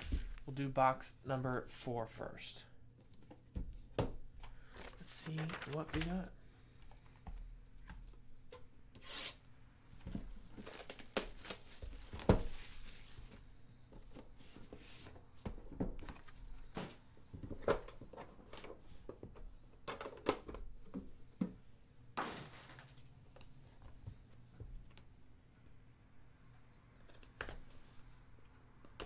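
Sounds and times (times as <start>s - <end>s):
cardboard and wrapping rustling: 0.0s - 0.5s, 4.5s - 6.3s, 10.0s - 19.1s, 22.2s - 23.1s.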